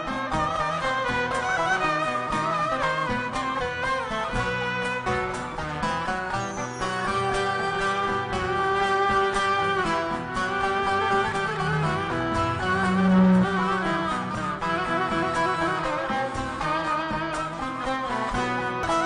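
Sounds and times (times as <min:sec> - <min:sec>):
long-necked lute: 0:00.0 - 0:19.0
steady beat: 0:00.0 - 0:19.0
violin: 0:00.0 - 0:19.0.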